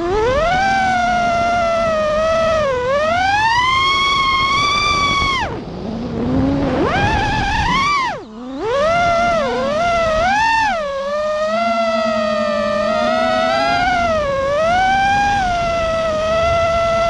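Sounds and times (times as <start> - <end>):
quadcopter motors whining: 0.0 - 17.0.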